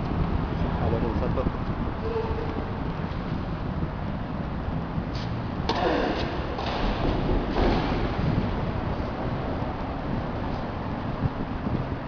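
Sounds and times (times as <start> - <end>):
steady low rumble: 0.0 - 12.0
racket hitting tennis ball: 5.2 - 8.2.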